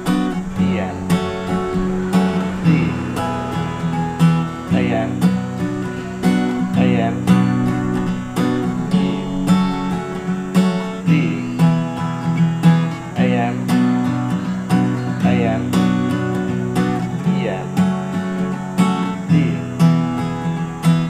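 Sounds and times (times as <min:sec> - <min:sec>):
acoustic guitar strumming: 0:00.0 - 0:21.0.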